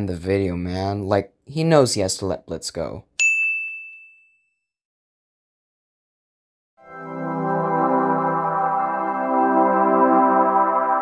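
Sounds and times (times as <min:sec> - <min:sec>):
bright bell-like ding: 0:03.2 - 0:04.6.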